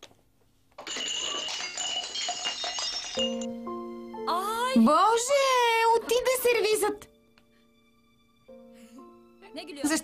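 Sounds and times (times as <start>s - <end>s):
glass shards ringing and clinking: 0.8s - 3.5s
glass smashing on tile floor: 0.8s - 3.5s.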